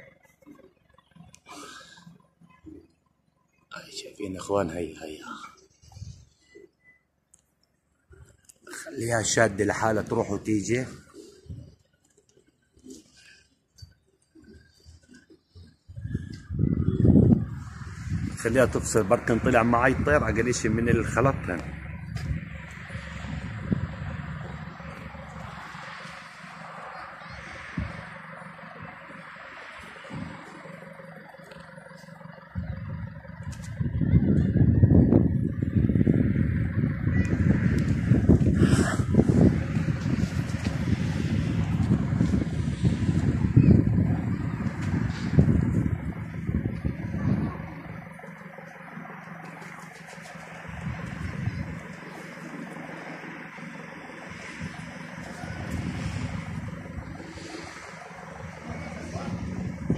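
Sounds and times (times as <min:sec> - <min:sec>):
wind buffeting microphone: 0:05.8 - 0:06.4, 0:09.1 - 0:11.8, 0:13.8 - 0:59.9.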